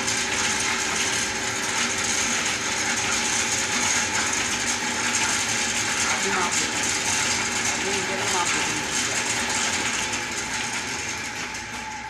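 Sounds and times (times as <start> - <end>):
lathe whirring: 0.0 - 12.0.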